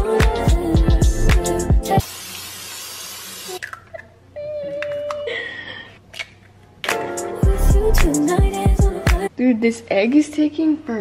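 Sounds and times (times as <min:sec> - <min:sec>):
hot oil hissing in a pan: 0:02.0 - 0:03.6.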